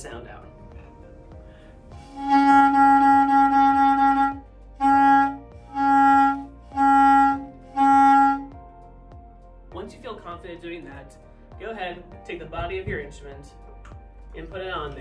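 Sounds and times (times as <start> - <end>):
clarinet mouthpiece tone: 2.0 - 8.6.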